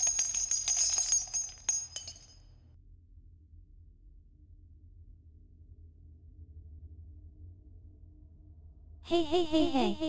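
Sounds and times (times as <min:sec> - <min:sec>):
small bells jingling: 0:00.0 - 0:02.5.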